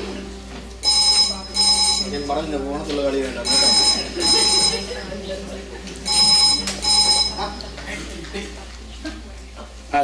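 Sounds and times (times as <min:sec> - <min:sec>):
telephone ringing: 0:00.8 - 0:02.4, 0:03.4 - 0:05.1, 0:06.0 - 0:07.6.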